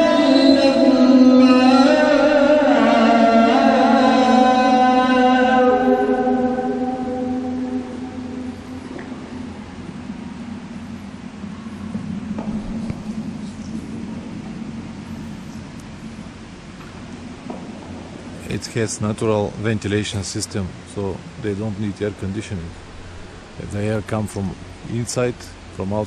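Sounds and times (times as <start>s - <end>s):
held chant tone: 0.0s - 16.6s
electric fans humming: 0.0s - 26.0s.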